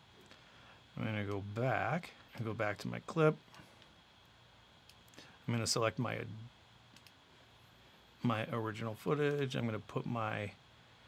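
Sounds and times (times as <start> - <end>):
faint computer mouse click: 7.0 - 7.2.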